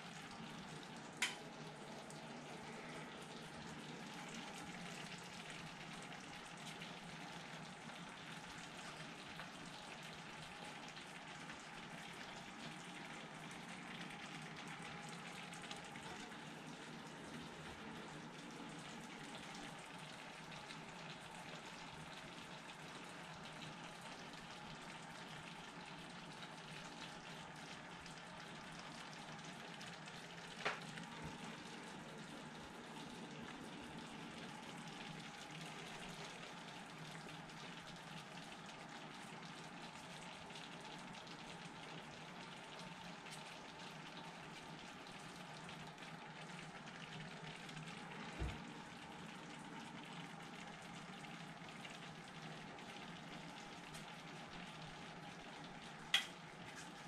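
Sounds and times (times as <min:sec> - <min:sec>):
low steady hum: 0:00.0 - 0:57.0
sauce sizzling in a pan: 0:00.0 - 0:57.0.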